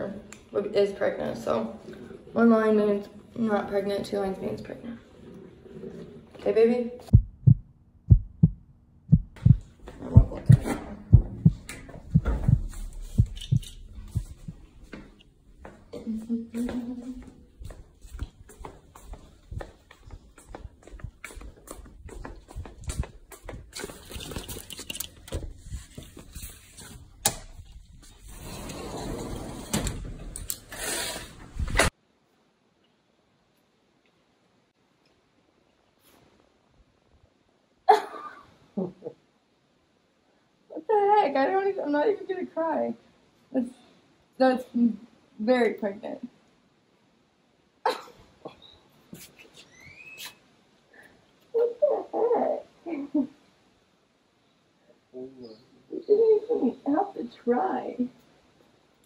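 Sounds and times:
heartbeat thumps: 0:07.1 - 0:15.0, 0:19.1 - 0:23.8.

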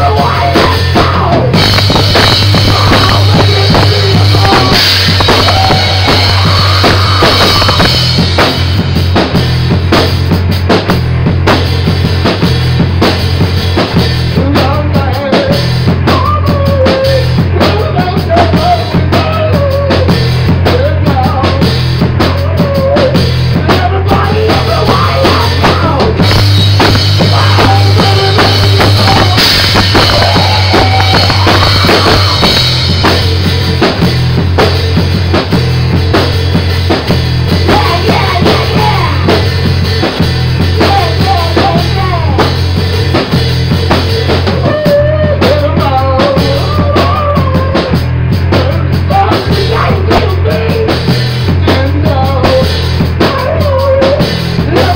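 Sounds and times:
drum kit playing rock: 0:00.0 - 0:54.9
electric bass line: 0:00.0 - 0:54.9.

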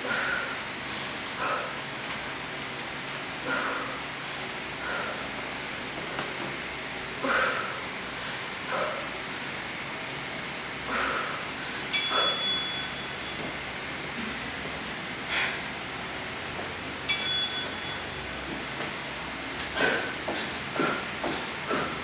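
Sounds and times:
small bell chime: 0:11.9 - 0:13.4, 0:17.1 - 0:18.3.

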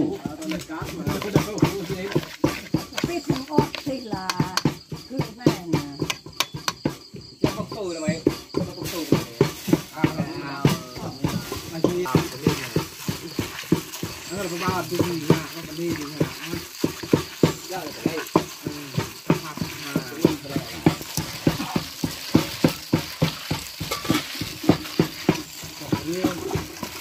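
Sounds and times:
squelching of wet minced mixture: 0:00.0 - 0:04.0, 0:08.8 - 0:27.0.

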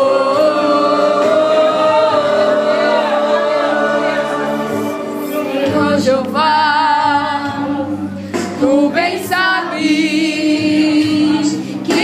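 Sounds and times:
church choir singing: 0:00.0 - 0:08.0.

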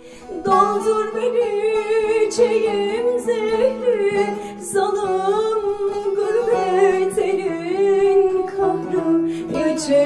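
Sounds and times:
woman singing folk song: 0:00.0 - 0:10.0.

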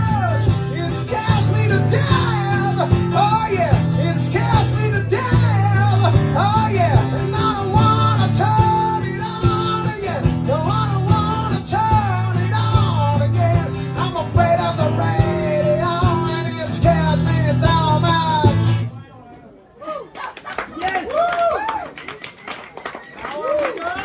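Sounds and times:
man singing: 0:00.0 - 0:18.8
strummed acoustic guitar: 0:00.0 - 0:18.9
audience clapping: 0:20.1 - 0:24.0.

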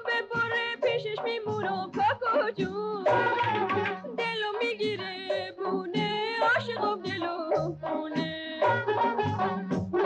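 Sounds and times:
woman singing ornamented line: 0:00.0 - 0:09.8
tar playing: 0:03.1 - 0:04.4
repeating bass notes: 0:03.1 - 0:10.0.

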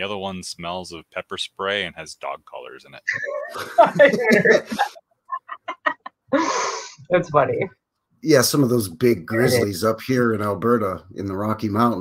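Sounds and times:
person laughing: 0:03.1 - 0:06.8.

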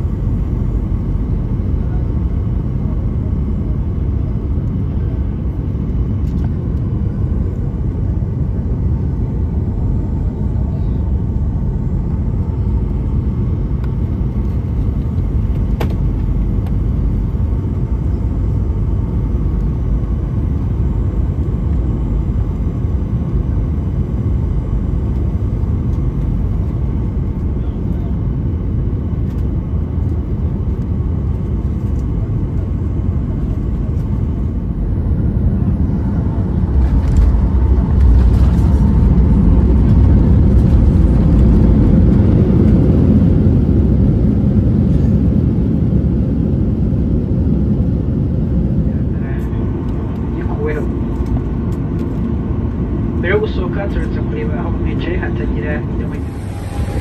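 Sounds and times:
airplane engine and airflow rumble: 0:00.0 - 0:57.0.

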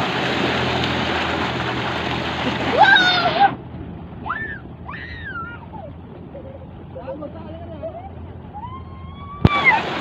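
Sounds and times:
water gushing from a pipe: 0:00.0 - 0:03.6, 0:09.4 - 0:10.0.

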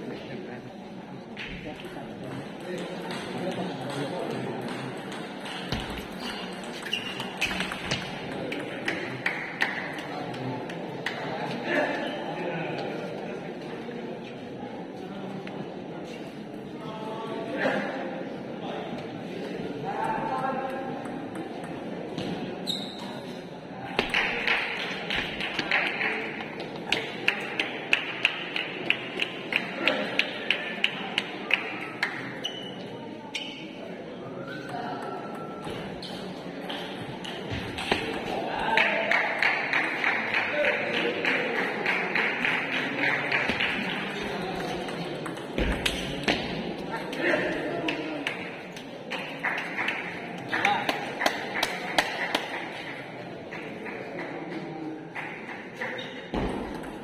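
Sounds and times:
chatter of people in a hall: 0:00.0 - 0:57.0
murmur of voices: 0:00.0 - 0:57.0
table tennis ball hitting paddles: 0:02.7 - 0:10.0, 0:36.7 - 0:38.4, 0:43.4 - 0:46.6.

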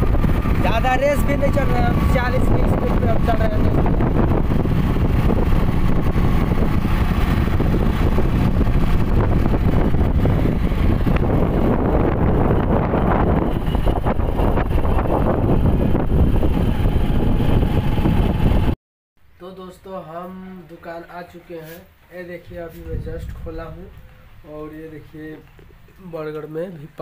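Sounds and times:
motorcycle engine and tyre noise: 0:00.0 - 0:18.8
wind buffeting microphone: 0:00.0 - 0:18.8, 0:22.5 - 0:24.9
man speaking: 0:00.6 - 0:04.0, 0:19.4 - 0:27.0.

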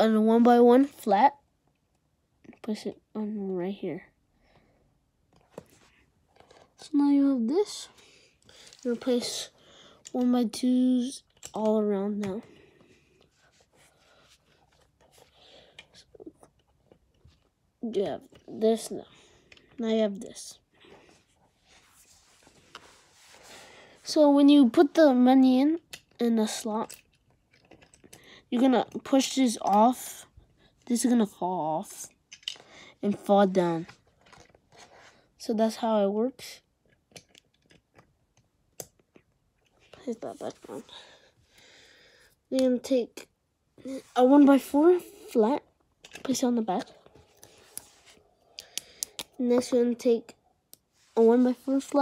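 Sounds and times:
small clicks and taps: 0:11.2 - 0:12.4, 0:25.8 - 0:26.2, 0:36.8 - 0:40.0, 0:48.5 - 0:49.8
plastic handling noise: 0:32.3 - 0:34.9.

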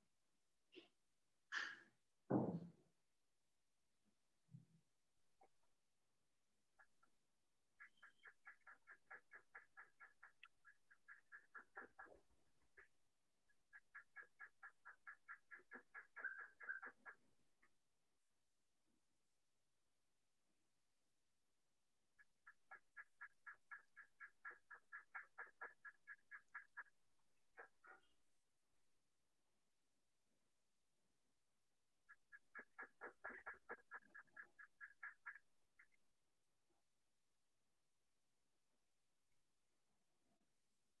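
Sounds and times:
bird chirping rapidly: 0:07.8 - 0:12.9, 0:13.5 - 0:17.2, 0:22.4 - 0:26.9, 0:32.1 - 0:36.0
short sharp animal calls: 0:13.7 - 0:17.2.

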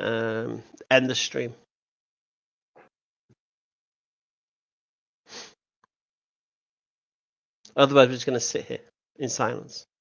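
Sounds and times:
man sniffing: 0:05.3 - 0:05.6.

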